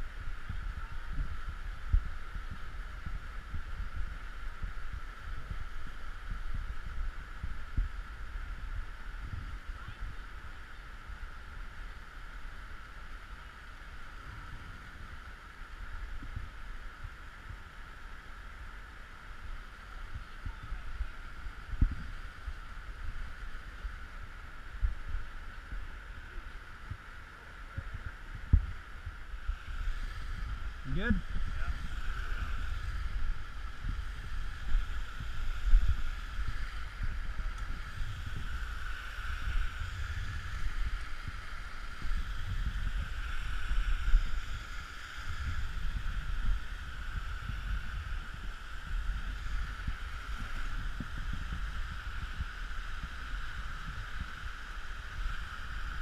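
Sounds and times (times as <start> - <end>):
wind buffeting microphone: 0.0 - 12.2, 20.1 - 56.0.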